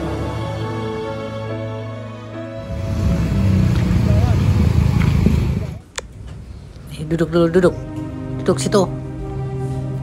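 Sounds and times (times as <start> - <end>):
car passing close by: 2.6 - 5.8
motor scooters passing: 2.6 - 5.8.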